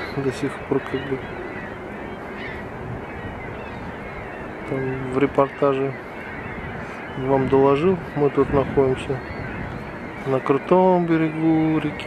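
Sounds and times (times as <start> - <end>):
faint bird call: 0.0 - 12.0
rushing outdoor background noise: 0.0 - 12.0.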